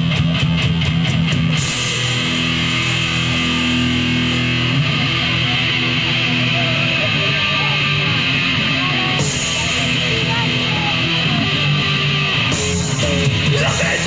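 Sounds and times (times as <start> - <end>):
rock band playing live: 0.0 - 14.0.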